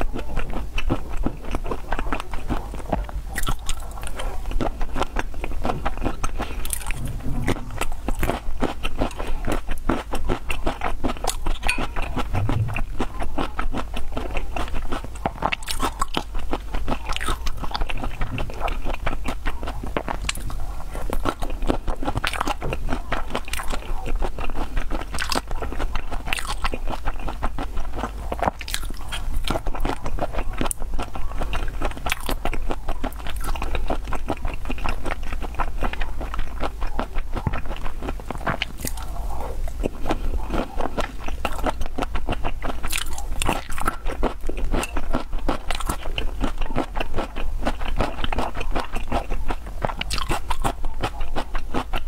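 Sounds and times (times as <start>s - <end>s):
wet chewing and mouth smacks: 0.0s - 52.0s.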